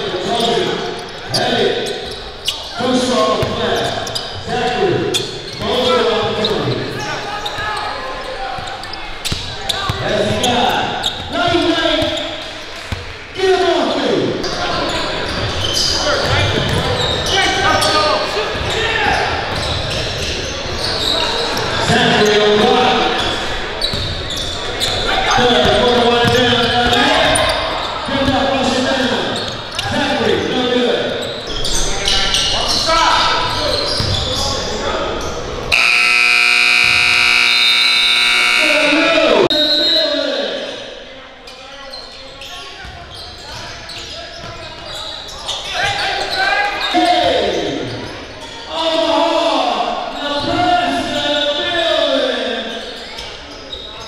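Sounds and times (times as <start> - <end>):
voices in echoing gym: 0.0 - 54.0
game buzzer: 35.7 - 39.5.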